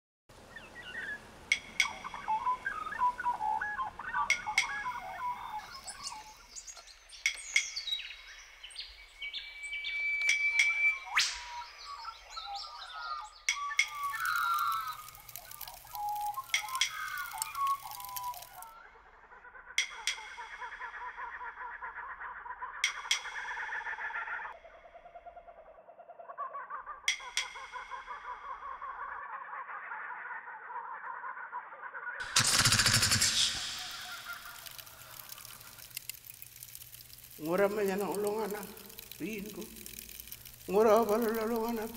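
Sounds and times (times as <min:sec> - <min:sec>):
bird calls and chirps: 0:00.4 - 0:41.9
sharp clicks: 0:01.5 - 0:03.2, 0:04.2 - 0:08.6, 0:10.1 - 0:12.2, 0:13.4 - 0:18.7, 0:22.8 - 0:23.7, 0:32.2 - 0:41.9
steady pulsing sound: 0:32.2 - 0:41.9.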